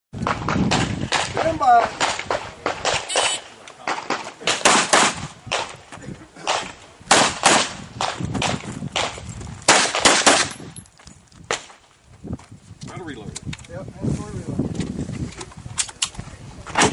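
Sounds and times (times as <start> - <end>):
pistol shots with echo: 0.7 - 5.7, 6.5 - 9.1, 9.7 - 10.6.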